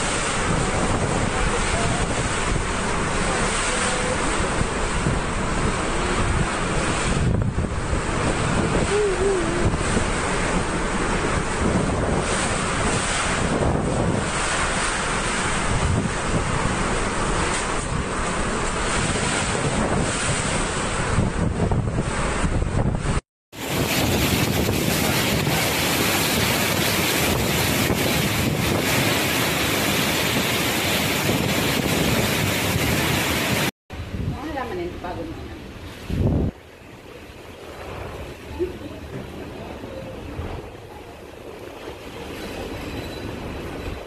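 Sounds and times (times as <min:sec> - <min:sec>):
wind buffeting on microphone: 0:00.0 - 0:44.0
wind with driving rain: 0:00.0 - 0:44.0.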